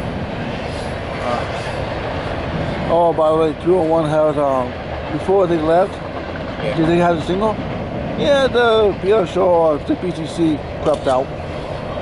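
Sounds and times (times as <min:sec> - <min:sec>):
freight train on a steel bridge: 0:00.0 - 0:12.0.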